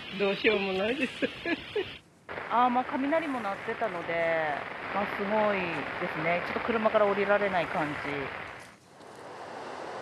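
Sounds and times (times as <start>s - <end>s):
rain on an umbrella: 2.3s - 8.8s.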